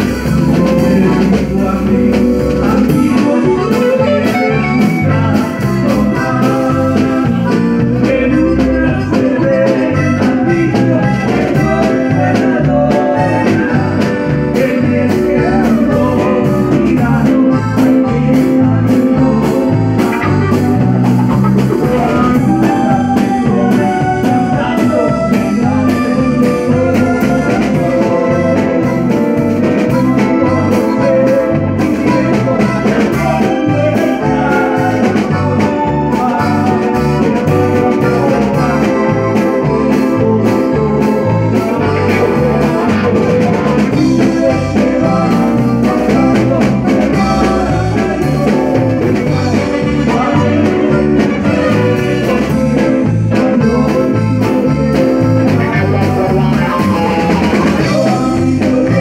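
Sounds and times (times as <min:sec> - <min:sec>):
live band playing upbeat song: 0:00.0 - 0:59.0.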